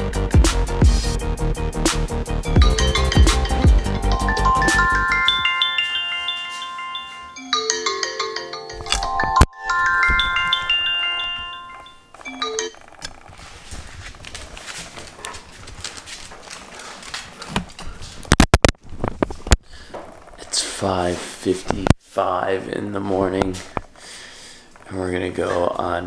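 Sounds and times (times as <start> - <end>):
phone alarm chiming melody: 2.5 - 12.8
faint handling noise: 8.8 - 22.0.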